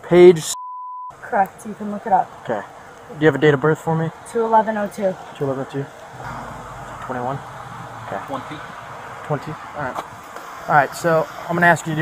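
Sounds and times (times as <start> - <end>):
steady low hum: 6.2 - 9.2.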